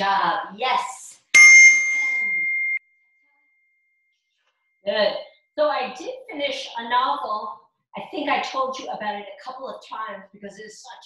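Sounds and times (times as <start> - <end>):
bell-like ding: 1.4 - 2.8.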